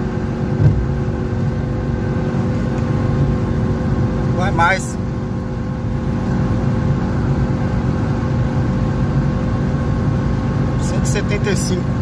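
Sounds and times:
car engine at high revs: 0.0 - 12.0
road noise: 0.0 - 12.0.

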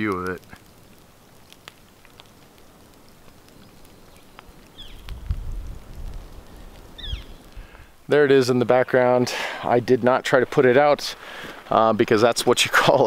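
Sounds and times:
smoldering wood crackling: 0.0 - 13.0
high bird chirp: 3.9 - 5.1, 7.0 - 7.4
wind rumbling on microphone: 4.6 - 8.0.

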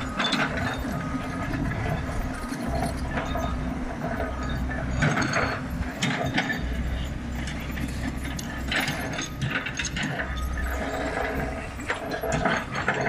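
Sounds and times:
excavator engine drone: 0.0 - 13.0
metallic clanks and rattles: 0.0 - 13.0.

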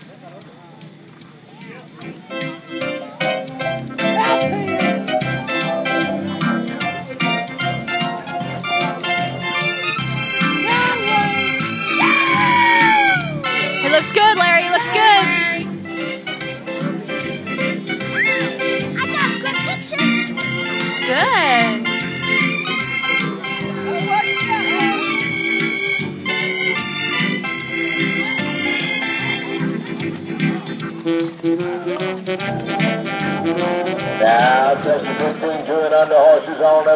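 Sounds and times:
organ chords: 2.5 - 36.9
steady beat: 10.2 - 23.3.

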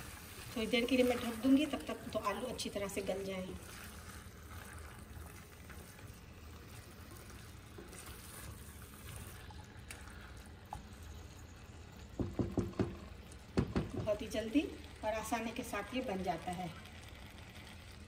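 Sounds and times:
low steady background noise: 0.0 - 18.0
woman's voice: 0.6 - 3.6, 14.0 - 16.8.

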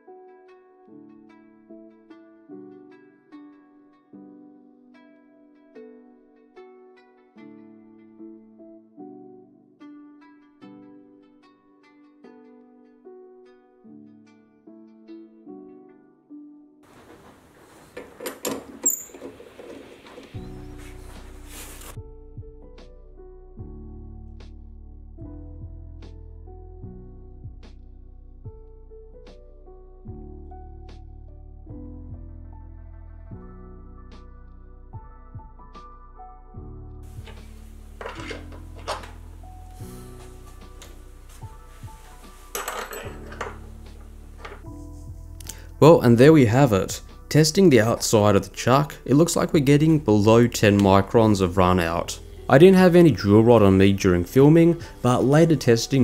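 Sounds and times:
background music: 0.0 - 56.0
metal part clicking and knocking: 18.0 - 20.3, 37.2 - 39.3, 42.5 - 44.7.

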